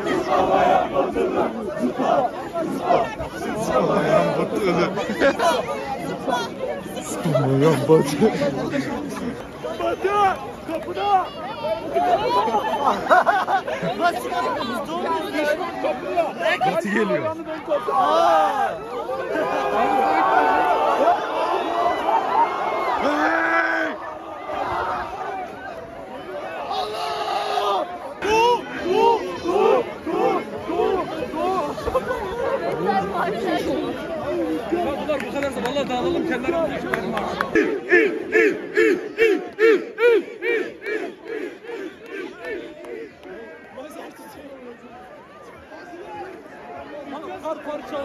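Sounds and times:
crowd of men chanting: 0:00.0 - 0:05.6, 0:37.2 - 0:43.4
crowd shouting and talking: 0:00.0 - 0:48.0.

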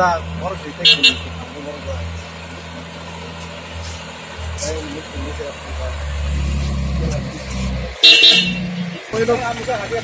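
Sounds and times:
vehicle engine rumbling: 0:00.0 - 0:10.0
vehicle horn toot: 0:00.8 - 0:01.4, 0:08.0 - 0:08.8.

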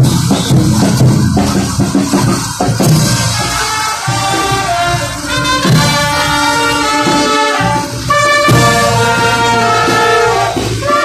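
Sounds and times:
marching brass band playing: 0:00.0 - 0:11.0.

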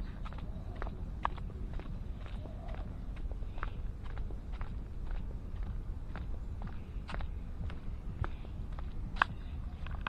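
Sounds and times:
footsteps on stone path: 0:00.0 - 0:10.0
steady low rumble: 0:00.0 - 0:10.0.

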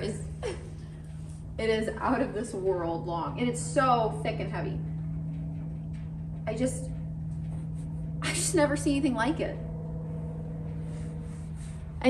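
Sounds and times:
machinery humming and rumbling: 0:00.0 - 0:12.0.

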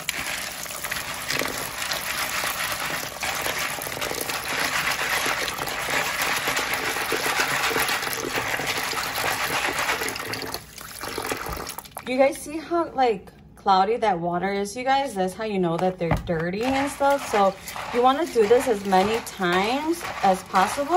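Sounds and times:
hand swishing beans: 0:00.0 - 0:10.5, 0:16.6 - 0:20.9
tap water pouring into bowl: 0:00.0 - 0:12.1.

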